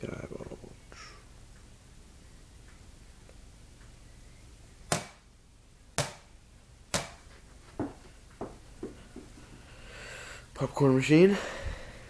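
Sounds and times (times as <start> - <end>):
rubber ball bouncing on floor: 6.0 - 6.3, 6.9 - 7.2.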